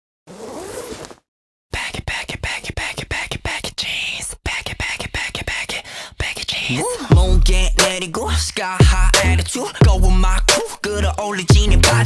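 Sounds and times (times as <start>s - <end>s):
zipper being pulled: 0.3s - 1.3s.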